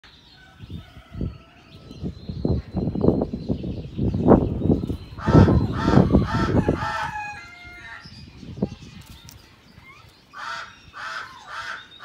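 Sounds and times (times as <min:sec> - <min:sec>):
bird calling with guttural notes: 0:00.0 - 0:12.0.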